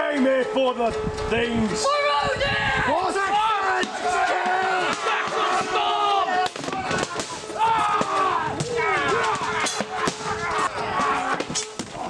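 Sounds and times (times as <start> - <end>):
men yelling battle cry: 1.9 - 12.0.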